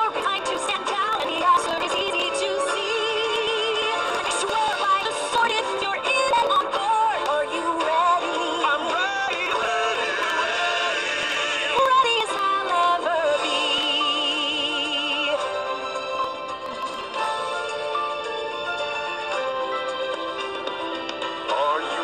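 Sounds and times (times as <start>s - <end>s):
instrumental backing: 0.0s - 22.0s
song with vibrato vocals: 0.0s - 22.0s.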